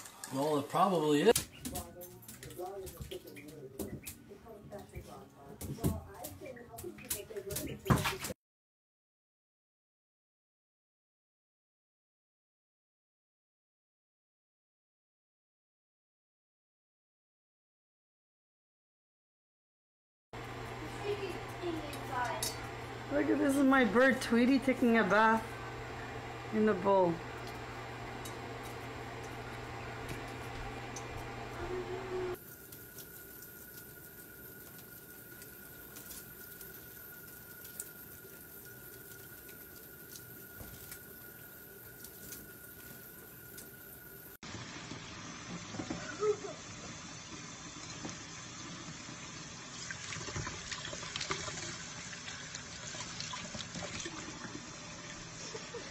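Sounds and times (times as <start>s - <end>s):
low hum: 20.4s - 44.3s.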